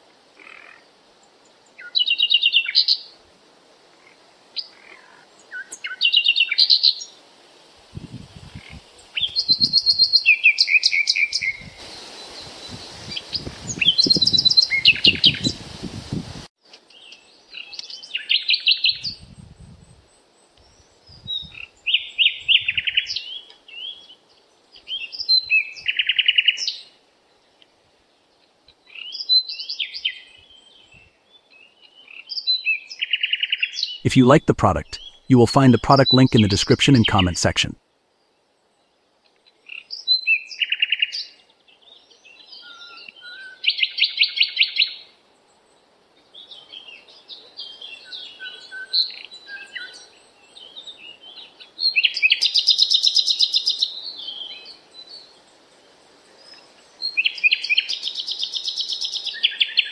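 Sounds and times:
steady hiss: 0:11.7 - 0:13.8.

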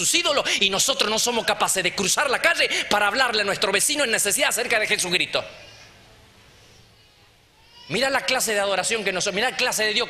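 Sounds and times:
man speaking over amplification: 0:00.0 - 0:05.6, 0:07.9 - 0:10.0.

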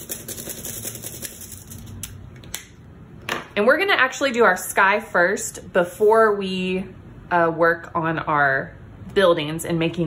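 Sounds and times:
marker scratching on foil: 0:00.0 - 0:02.0.

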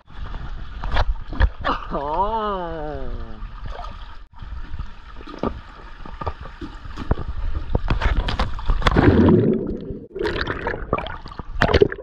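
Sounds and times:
water splashing against camera: 0:04.9 - 0:12.0
muffled underwater bubbling: 0:08.9 - 0:12.0.

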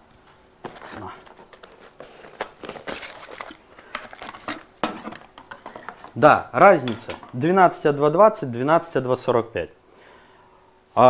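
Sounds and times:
packaging rustling and crinkling: 0:00.6 - 0:06.3.

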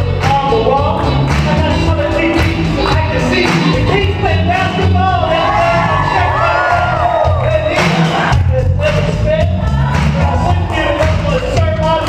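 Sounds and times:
hip-hop backing track: 0:00.0 - 0:12.0
crowd cheering and whooping: 0:05.1 - 0:08.4.

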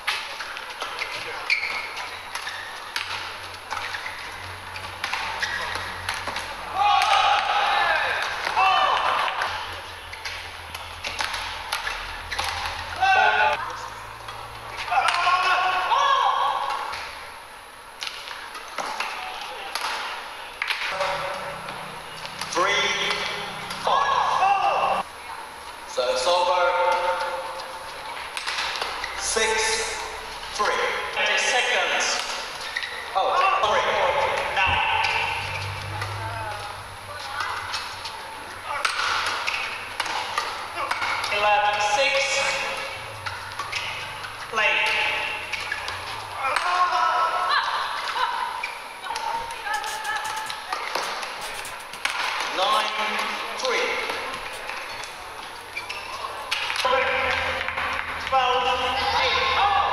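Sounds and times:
rackets hitting shuttlecock: 0:00.0 - 0:13.6, 0:28.3 - 0:29.2, 0:38.7 - 0:46.8, 0:49.1 - 0:58.2
voices and shouts: 0:06.5 - 0:09.7, 0:12.5 - 0:13.9, 0:14.7 - 0:16.9, 0:22.5 - 0:25.1, 0:29.2 - 0:39.2, 0:43.6 - 0:51.2, 0:58.3 - 0:59.9.

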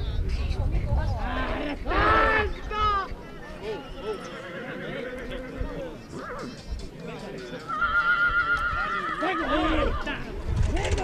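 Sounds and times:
voices of people: 0:00.0 - 0:11.0
horse whinnying: 0:07.7 - 0:10.2.

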